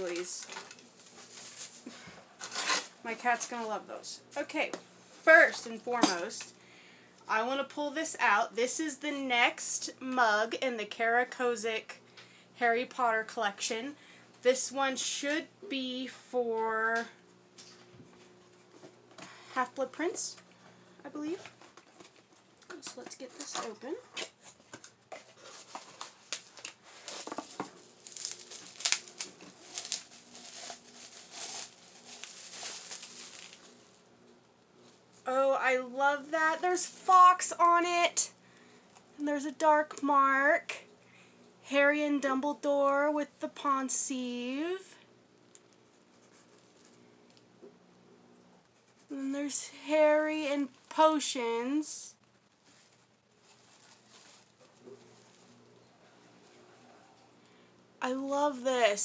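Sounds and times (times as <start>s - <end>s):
cardboard and bubble wrap rustling: 0.0s - 3.8s, 23.0s - 34.0s, 52.4s - 55.7s.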